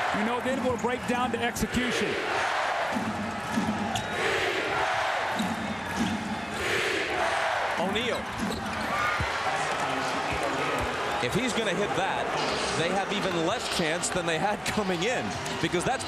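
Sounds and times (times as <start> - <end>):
arena crowd noise: 0.0 - 16.0
commentator's voice: 0.1 - 2.2, 9.5 - 16.0.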